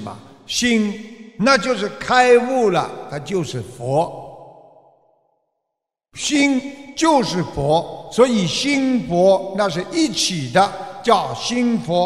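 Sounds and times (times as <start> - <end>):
man speaking: 0.0 - 4.2, 6.2 - 12.0.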